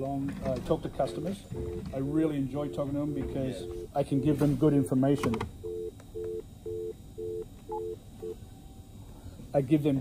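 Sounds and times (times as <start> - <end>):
telephone busy tone beeps: 1.0 - 4.5, 5.6 - 8.4.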